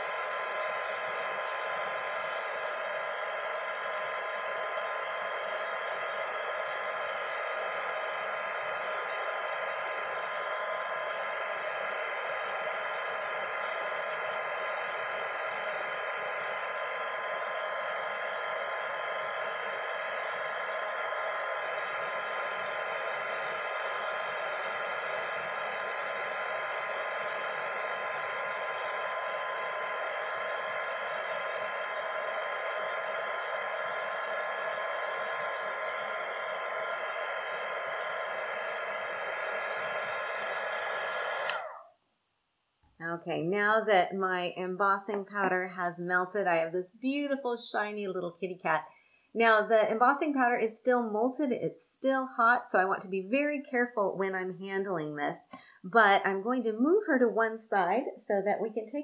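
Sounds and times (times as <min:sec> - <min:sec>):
heat gun fan whine: 0:00.0 - 0:41.9, 0:43.4 - 0:54.6.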